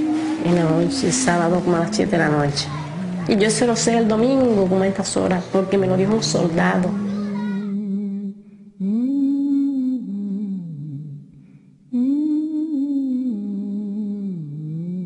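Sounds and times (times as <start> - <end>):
person humming a slow tune: 0.0 - 3.4, 6.8 - 15.0.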